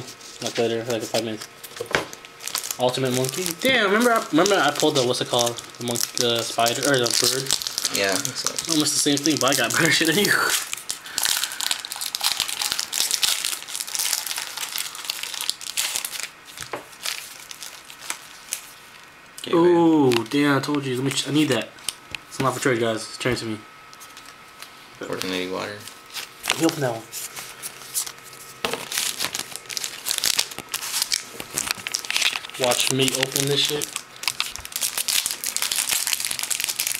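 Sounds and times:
foil wrapper crinkling and tearing: 0.3 - 19.1, 19.8 - 22.0, 24.0 - 36.9.

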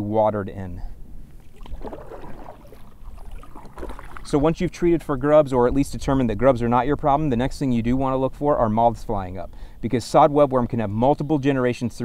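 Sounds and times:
faint water noise: 0.6 - 6.4.

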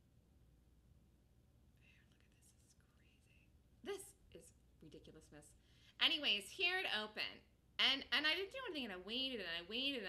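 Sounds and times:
woman speaking: 3.8 - 10.0.

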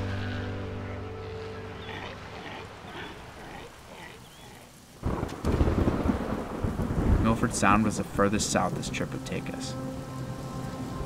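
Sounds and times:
music: 0.0 - 2.1, 8.2 - 11.0
rain: 0.0 - 11.0
thunder rumble: 1.6 - 10.2.

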